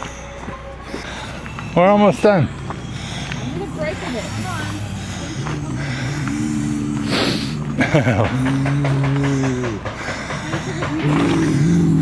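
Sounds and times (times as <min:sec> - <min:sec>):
person moaning: 0:04.2 - 0:09.8
person laughing: 0:07.1 - 0:11.8.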